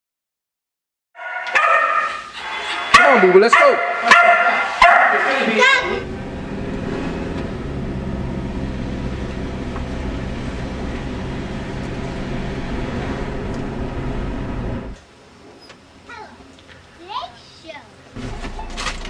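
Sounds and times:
car engine and road noise: 4.1 - 15.2, 18.1 - 19.0.

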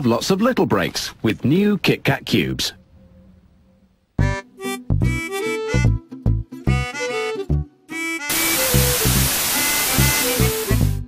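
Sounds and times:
tv static hiss: 8.3 - 11.0.

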